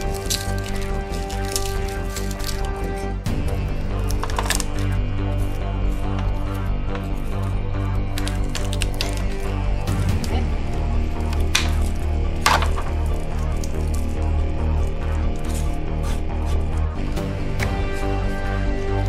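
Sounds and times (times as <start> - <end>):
music with held notes and bass: 0.0 - 19.0.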